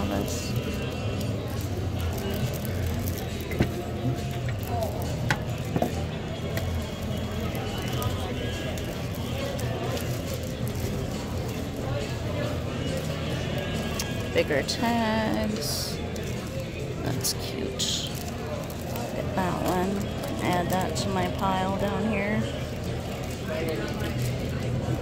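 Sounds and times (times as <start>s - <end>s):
market chatter: 0.0s - 25.0s
plastic sleeves crinkling: 0.1s - 25.0s.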